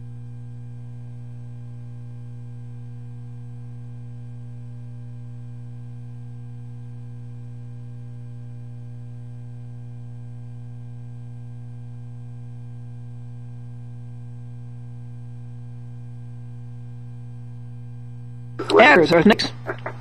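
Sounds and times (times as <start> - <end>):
mains hum: 0.0 - 20.0.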